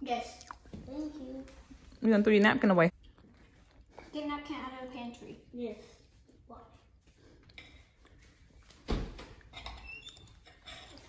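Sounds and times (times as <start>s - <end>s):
faint squeaks: 9.5s - 11.0s.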